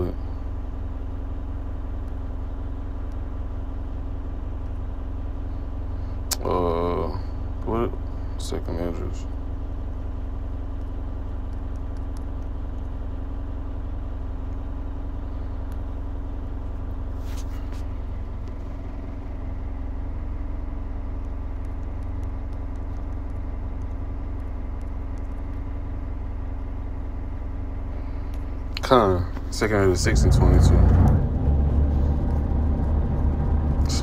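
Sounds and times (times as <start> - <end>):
low machine hum: 0.0 - 34.0.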